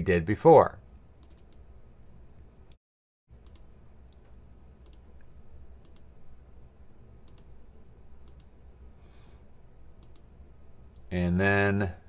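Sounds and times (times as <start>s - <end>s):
low background hum: 0.0s - 12.0s
computer mouse clicking: 1.2s - 1.6s, 3.4s - 6.1s, 7.2s - 7.5s, 8.2s - 8.5s, 10.0s - 10.3s.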